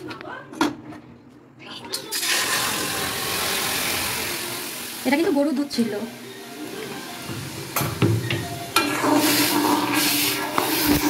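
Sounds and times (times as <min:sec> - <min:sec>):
milk sizzling in a hot pan: 0:02.1 - 0:11.0.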